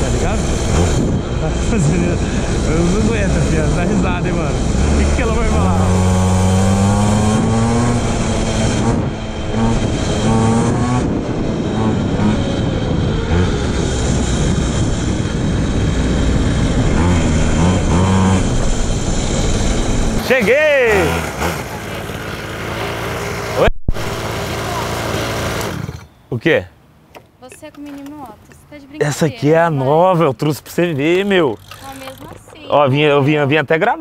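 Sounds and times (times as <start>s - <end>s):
wind on microphone: 0.0s - 20.2s
small engine revving: 0.0s - 26.2s, 31.0s - 32.5s.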